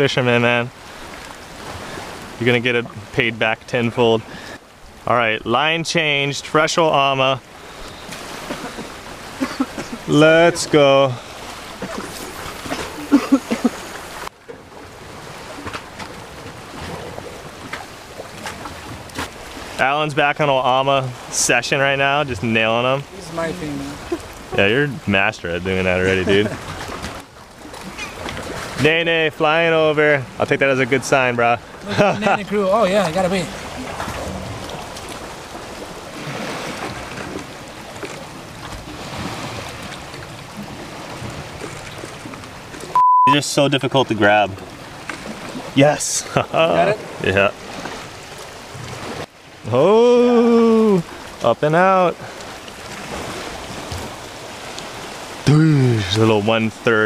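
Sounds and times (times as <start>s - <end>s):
water noise: 0.0s - 57.0s.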